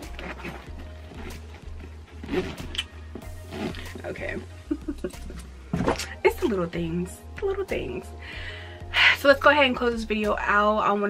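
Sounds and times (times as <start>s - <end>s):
leather handbag handling: 0.0s - 4.5s
soft background music: 0.0s - 11.0s.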